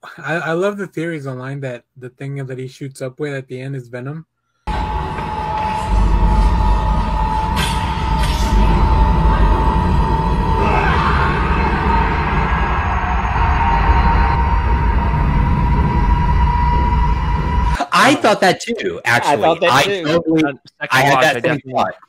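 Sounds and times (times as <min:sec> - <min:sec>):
dark tense film score: 0:04.7 - 0:17.8
deep rumble: 0:04.7 - 0:17.8
held high note: 0:18.8 - 0:22.0.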